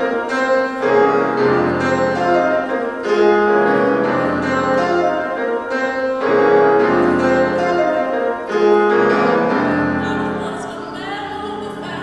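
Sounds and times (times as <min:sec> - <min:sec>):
grand piano playing slow chords: 0:00.0 - 0:12.0.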